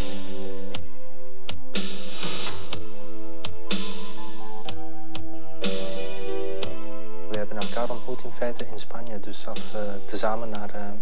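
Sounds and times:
synthesizer chords: 0.0s - 8.9s
electronic drum beat: 0.0s - 10.8s.

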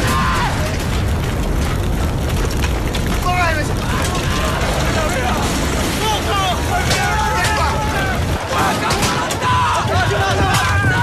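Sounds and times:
men shouting and yelling: 0.0s - 0.9s, 3.2s - 11.0s
steady low rumble: 0.0s - 11.0s.

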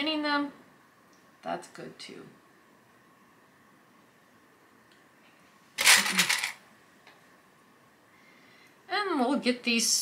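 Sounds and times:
small hard objects clattering: 5.8s - 6.6s.

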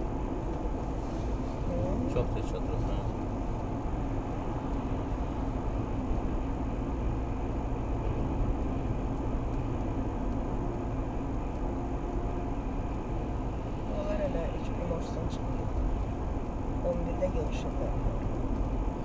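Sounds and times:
car cabin road noise drone: 0.0s - 19.0s.

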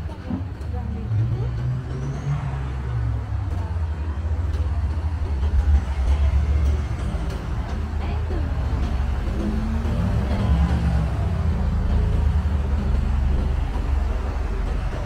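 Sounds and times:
passersby talking faintly: 0.0s - 15.0s
road traffic rumble: 0.0s - 15.0s.

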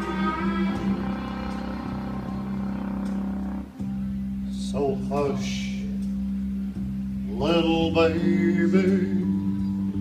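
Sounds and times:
low sustained drone: 0.0s - 5.0s
guitar: 0.0s - 10.0s.

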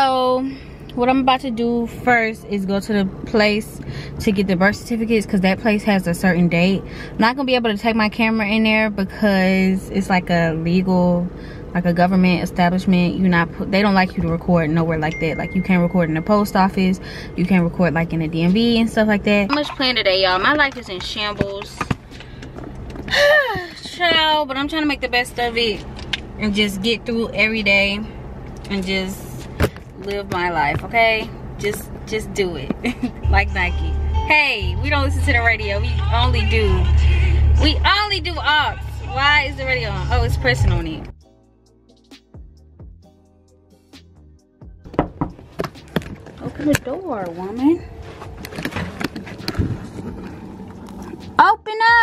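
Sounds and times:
low car interior rumble: 0.0s - 41.2s, 44.6s - 52.0s
woman sighing: 23.1s - 23.8s
dull thump: 44.8s - 46.3s
knocks and clicks at door: 44.9s - 45.8s.

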